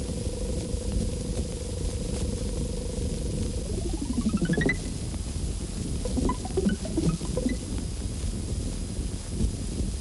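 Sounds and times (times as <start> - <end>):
film print hiss and rumble: 0.0 - 10.0
pulsing synthetic buzz tone: 2.7 - 5.0, 6.0 - 7.7
gliding tones: 3.6 - 4.9, 6.0 - 7.6.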